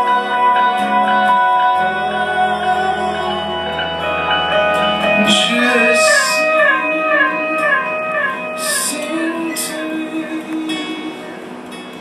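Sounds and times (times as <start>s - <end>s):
acoustic band playing: 0.0s - 12.0s
acoustic guitar strums: 0.0s - 12.0s.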